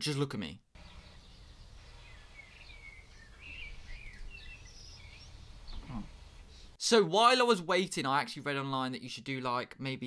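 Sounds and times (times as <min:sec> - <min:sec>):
faint bird chirps: 0:00.8 - 0:06.7.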